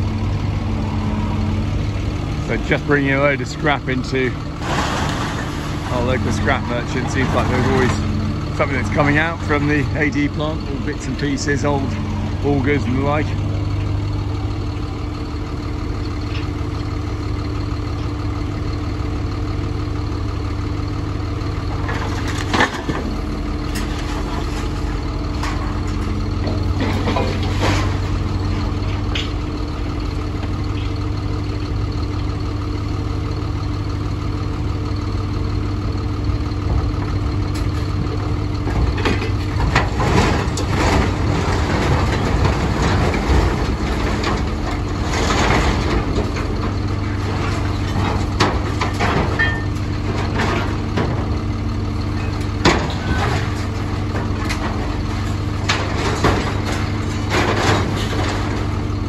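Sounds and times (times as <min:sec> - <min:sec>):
tractor diesel engine idling: 0:00.0 - 0:59.0
scrap metal clanking and crashing: 0:00.3 - 0:18.5, 0:20.8 - 0:32.0, 0:33.8 - 0:59.0.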